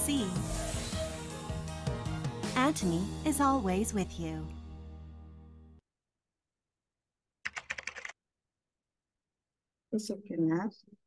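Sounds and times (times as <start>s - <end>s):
keyboard typing clicks: 7.5s - 8.2s.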